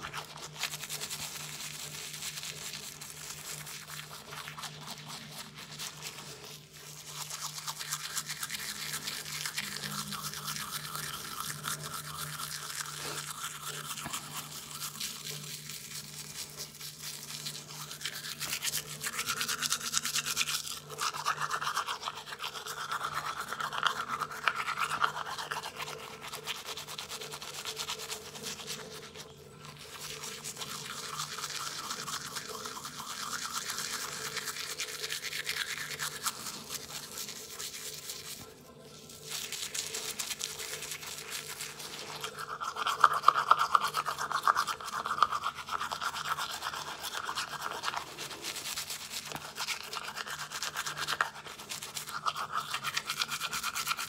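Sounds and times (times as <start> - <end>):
toothbrush scrubbing wet: 0.0 - 54.0.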